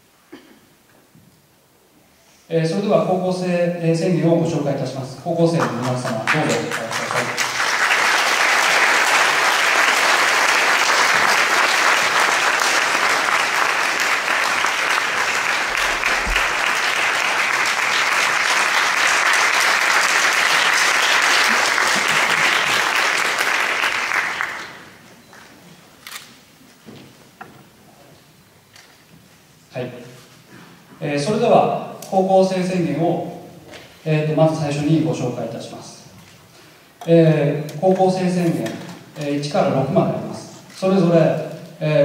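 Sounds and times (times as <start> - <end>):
audience applause: 5.6 - 25.0.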